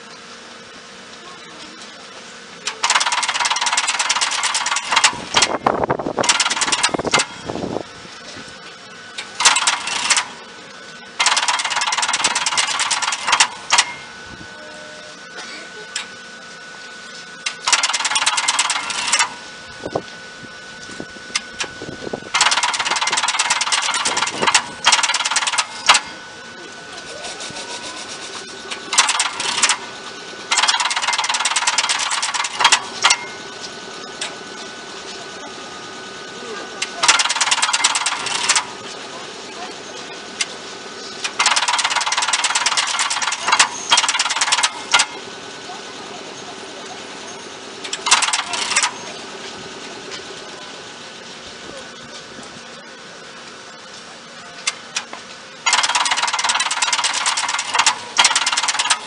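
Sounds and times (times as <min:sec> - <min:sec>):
rapid clicking and hissing: 0:02.6 - 0:07.3, 0:09.2 - 0:10.4, 0:11.2 - 0:13.9, 0:17.4 - 0:19.3, 0:22.3 - 0:26.1, 0:26.9 - 0:35.3, 0:36.8 - 0:39.1, 0:40.0 - 0:46.0, 0:47.6 - 0:50.5, 0:52.2 - 0:59.0.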